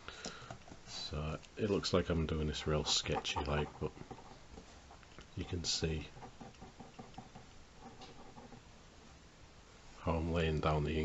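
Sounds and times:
pen scratching on paper: 0:02.6 - 0:08.7.

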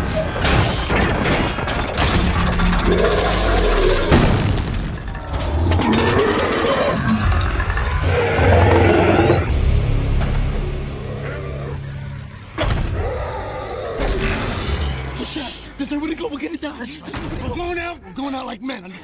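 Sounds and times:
orchestral film score: 0:00.0 - 0:19.0
crashing metal impacts: 0:00.2 - 0:06.2
deep mechanical growls: 0:00.8 - 0:15.4.

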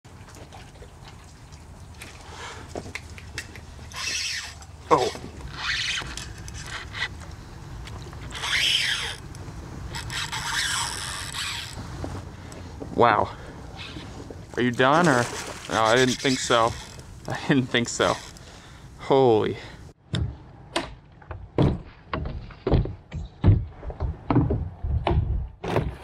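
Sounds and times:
fishing reel drag buzzing: 0:03.9 - 0:07.1, 0:08.3 - 0:11.9, 0:15.2 - 0:17.4.

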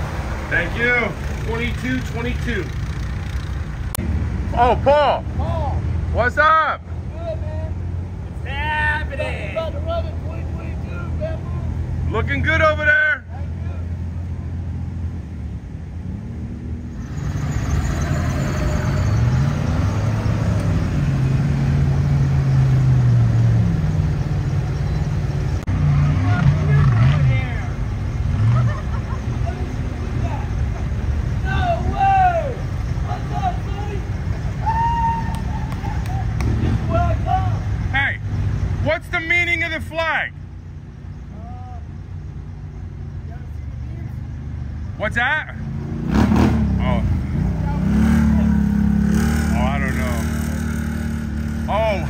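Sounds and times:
vehicle engine running: 0:00.0 - 0:05.7
voices talking: 0:00.0 - 0:15.2, 0:23.9 - 0:52.0.

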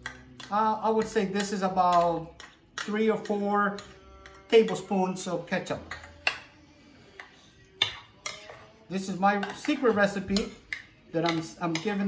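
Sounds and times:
metal spoon clinking against glass bowl: 0:00.0 - 0:06.6, 0:07.2 - 0:12.0.

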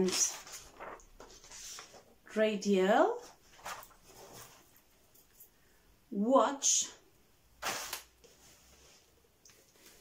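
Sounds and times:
faint rustling of hand movement: 0:00.0 - 0:02.2, 0:03.2 - 0:05.6, 0:07.6 - 0:10.0
woman speaking: 0:02.3 - 0:03.3, 0:06.1 - 0:07.0.

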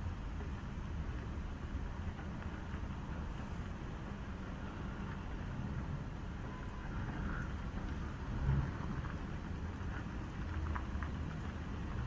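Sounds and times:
distant city traffic: 0:00.0 - 0:12.0.

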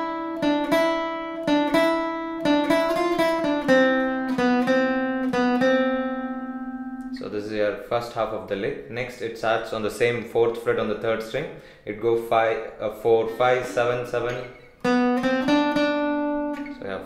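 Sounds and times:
acoustic guitar single-note lick: 0:00.0 - 0:07.4, 0:13.2 - 0:17.0.

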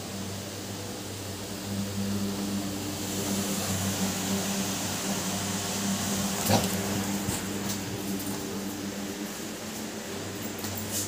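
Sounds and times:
low mechanical hum with hiss: 0:00.0 - 0:11.0.

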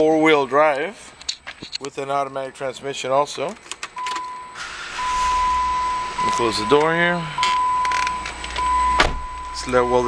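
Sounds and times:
car engine starting and idling: 0:03.9 - 0:10.0
high-pitched warning chime: 0:04.1 - 0:10.0
hiss: 0:04.6 - 0:05.6.

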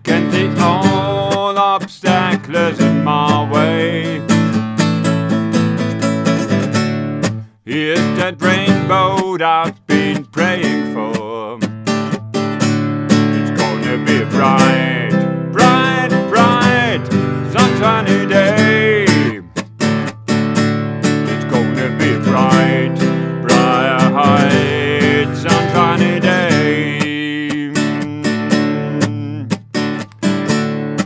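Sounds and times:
man singing: 0:00.0 - 0:04.6, 0:07.6 - 0:11.8, 0:13.3 - 0:19.6, 0:21.2 - 0:29.6
acoustic guitar strumming: 0:00.0 - 0:31.0.

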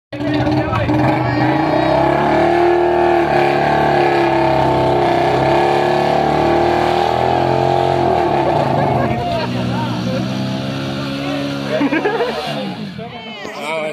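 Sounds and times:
motorcycle engines revving: 0:00.2 - 0:13.9.

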